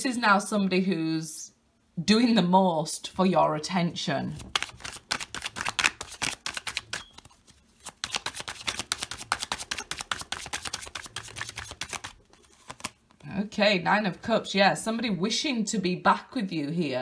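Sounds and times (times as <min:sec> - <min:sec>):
cards being shuffled: 0:04.3 - 0:13.2.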